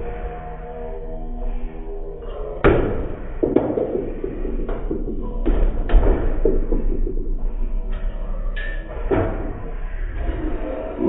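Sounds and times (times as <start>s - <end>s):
foosball ball knocking and clattering: 2.7s - 7.1s.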